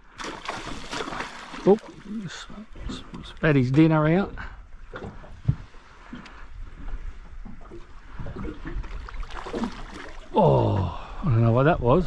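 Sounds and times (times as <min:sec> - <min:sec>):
water lapping and splashing: 0:00.0 - 0:11.4.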